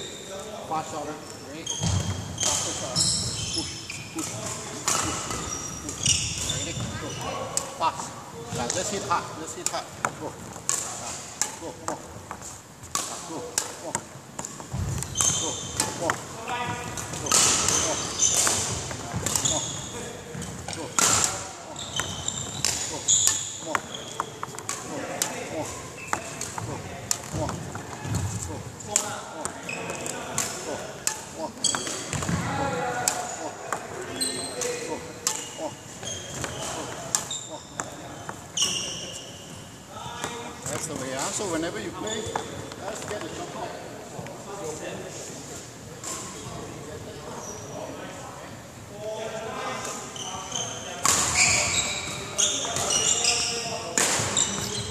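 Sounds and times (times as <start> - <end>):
shoes squeaking on wooden floor: 1.1 - 7.5, 10.0 - 28.6, 29.4 - 30.3, 31.2 - 39.7, 40.6 - 43.4, 50.2 - 54.9.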